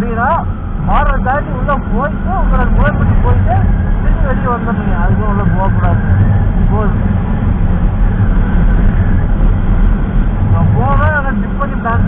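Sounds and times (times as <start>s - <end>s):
motorcycle engine drone: 0.0s - 12.0s
wind noise on microphone: 0.0s - 12.0s.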